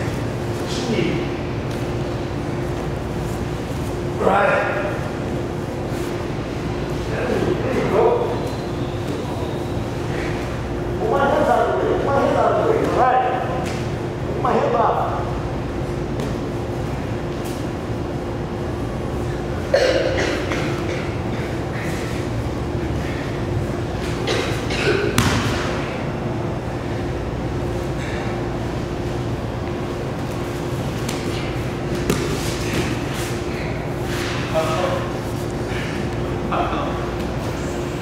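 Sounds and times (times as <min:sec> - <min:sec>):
low background hum: 0:00.0 - 0:38.0.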